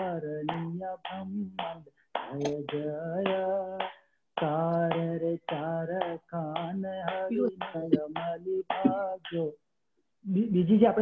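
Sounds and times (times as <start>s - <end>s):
man singing a chant: 0.0s - 9.6s, 10.3s - 11.0s.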